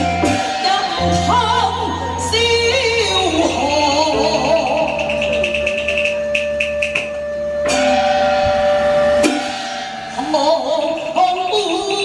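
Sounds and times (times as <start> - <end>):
sharp percussion strike: 0.0 - 2.3, 4.3 - 12.0
long held instrumental note: 0.0 - 10.9.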